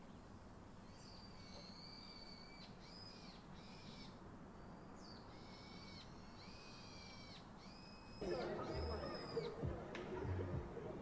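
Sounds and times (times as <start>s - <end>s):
bird whistling faintly: 0.8s - 9.8s.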